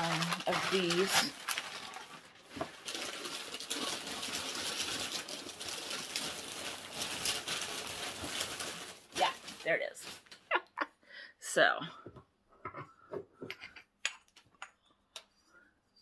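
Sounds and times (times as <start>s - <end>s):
rummaging in a bag: 0.0s - 10.3s.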